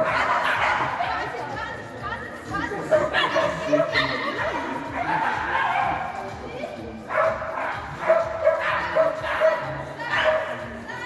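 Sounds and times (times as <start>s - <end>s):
people's voices: 0.0s - 11.0s
small dog barking: 7.1s - 10.6s.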